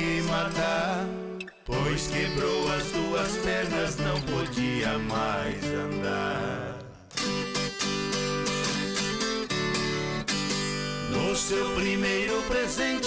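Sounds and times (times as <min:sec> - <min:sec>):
plucked and strummed strings: 0:00.0 - 0:13.0.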